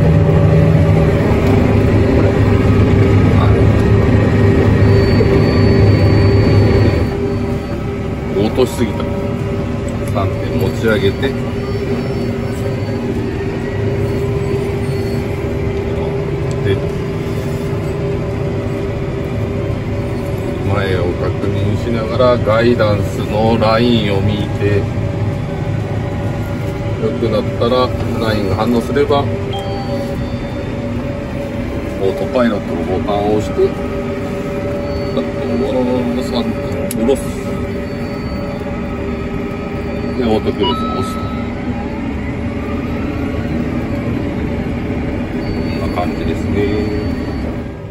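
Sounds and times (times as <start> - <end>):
faint steady whines: 0.0 - 47.9
tractor engine rumbling: 0.0 - 47.9.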